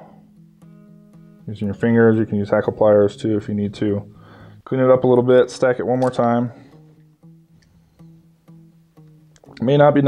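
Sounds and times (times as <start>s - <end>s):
plucked acoustic guitar: 0.0s - 10.0s.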